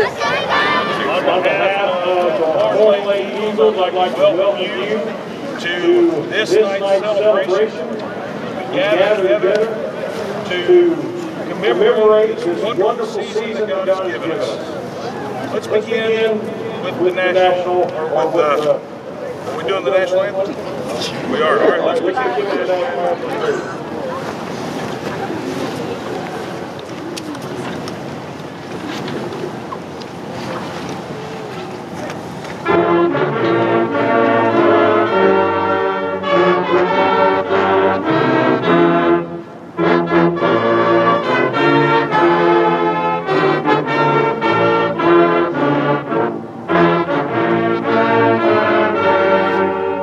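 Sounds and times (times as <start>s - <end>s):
crowd noise: 0.0s - 50.0s
marching band brass playing: 32.6s - 50.0s.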